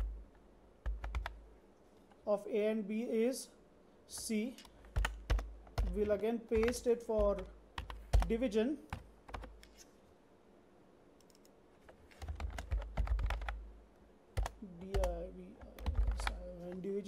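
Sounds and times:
typing on computer keyboard: 0.8s - 1.4s, 4.6s - 9.7s, 11.2s - 13.6s, 14.4s - 16.4s.

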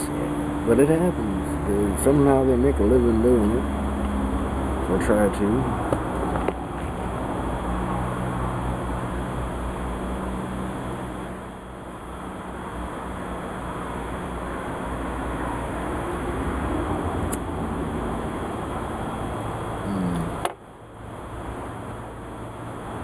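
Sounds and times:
low mechanical hum: 0.0s - 23.0s.

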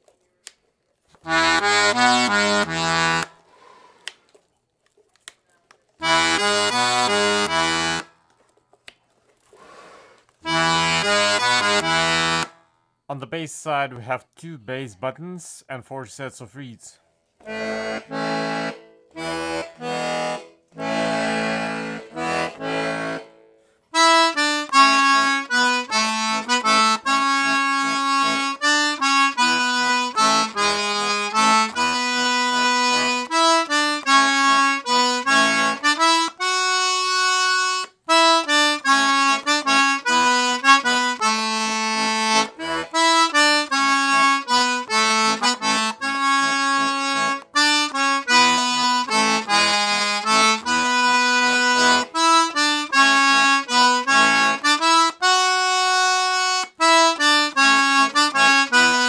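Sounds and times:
button accordion playing a tune: 1.2s - 3.8s, 6.0s - 8.2s, 10.4s - 12.8s, 17.4s - 59.0s.

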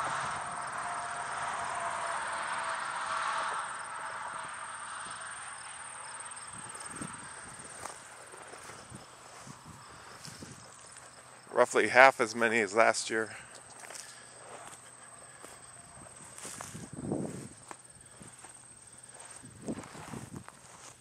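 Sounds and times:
insects trilling: 0.0s - 21.0s.

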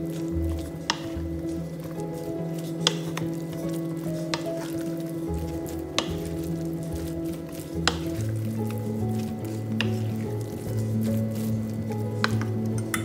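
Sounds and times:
background music: 0.0s - 13.0s
spoon stirring sticky rice: 0.0s - 13.0s.

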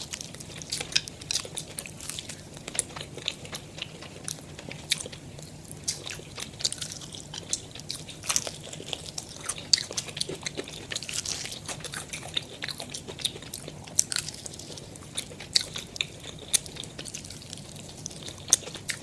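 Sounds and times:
crunching fried chicken: 0.0s - 19.0s.

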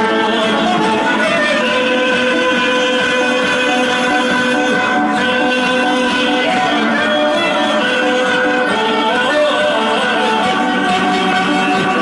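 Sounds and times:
amateur band playing: 0.0s - 12.0s
man singing into microphone: 0.0s - 12.0s.

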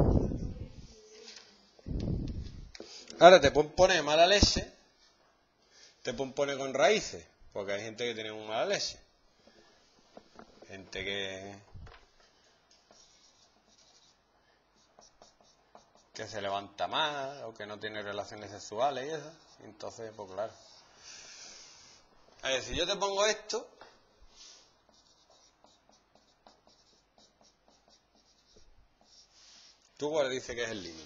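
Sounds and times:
marker pen on whiteboard: 0.2s - 5.2s, 6.1s - 31.0s.

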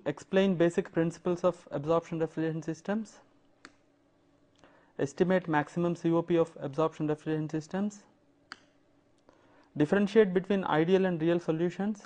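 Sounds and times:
sharp click: 8.5s - 8.8s.

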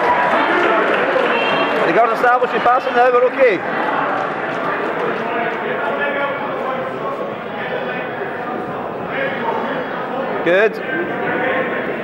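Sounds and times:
hubbub of many voices: 0.0s - 12.0s.

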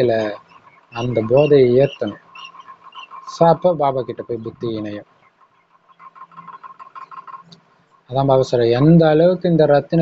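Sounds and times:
small animal chirping: 0.0s - 8.1s.

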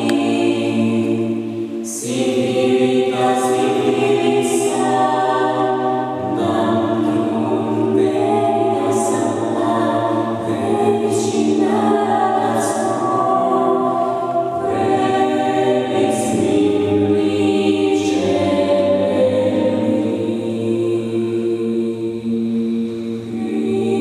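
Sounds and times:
a cappella vocal ensemble singing: 0.0s - 24.0s.

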